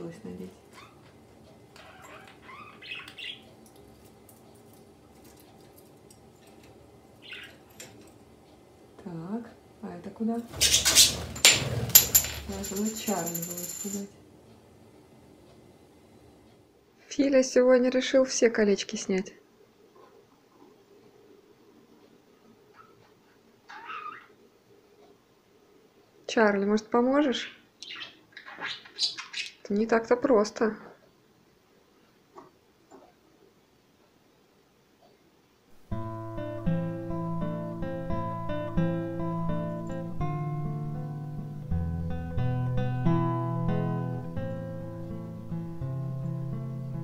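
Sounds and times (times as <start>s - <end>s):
budgerigar squawk: 2.0s - 3.4s, 23.7s - 24.4s
budgerigar chirping: 2.0s - 3.5s, 7.2s - 7.6s, 27.4s - 29.6s.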